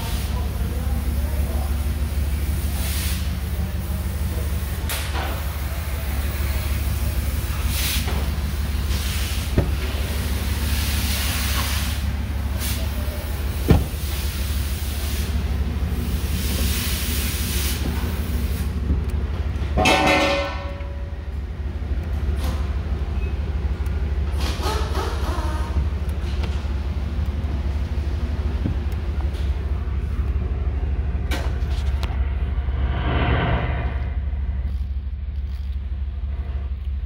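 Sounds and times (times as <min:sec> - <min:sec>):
truck engine idling: 0:00.0 - 0:32.7.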